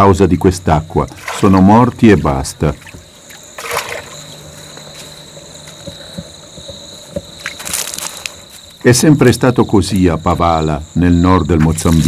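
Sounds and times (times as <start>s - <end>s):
insects chirring: 0.0s - 12.0s
water sloshing in a bowl: 0.9s - 4.9s.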